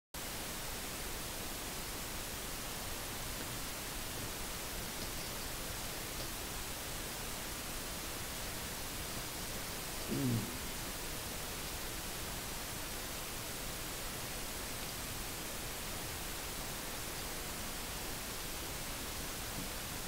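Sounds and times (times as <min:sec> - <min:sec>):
recording hiss: 0:00.2 - 0:20.0.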